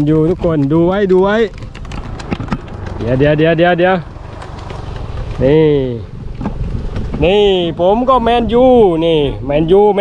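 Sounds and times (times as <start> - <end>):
wind buffeting microphone: 0.0 - 10.0
man speaking: 3.0 - 4.1.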